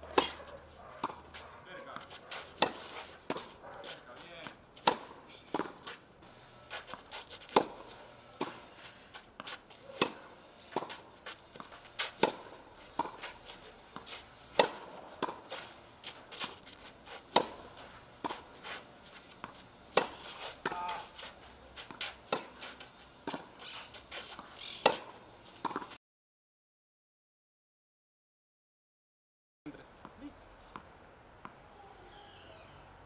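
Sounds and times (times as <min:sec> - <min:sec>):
racket hitting tennis ball: 0:00.0 - 0:26.0.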